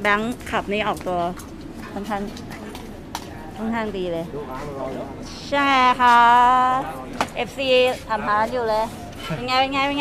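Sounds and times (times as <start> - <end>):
people talking outdoors: 0.0 - 10.0.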